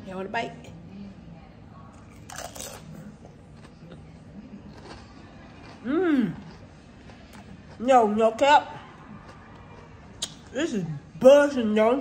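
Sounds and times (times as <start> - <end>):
chewing: 2.0 - 10.6.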